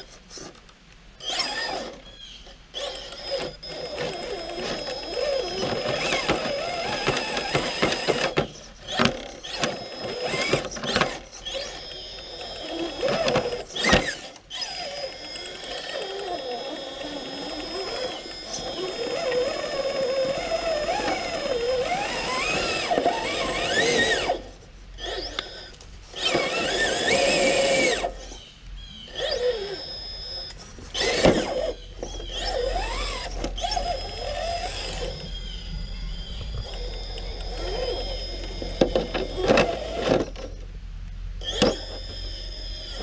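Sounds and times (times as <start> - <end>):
electric motor whining: 1.2 - 43.0.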